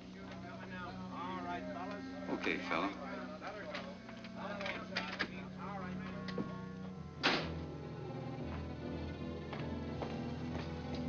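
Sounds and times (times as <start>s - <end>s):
background voices in busy room: 0.0s - 11.0s
film score low sustained notes: 0.0s - 11.0s.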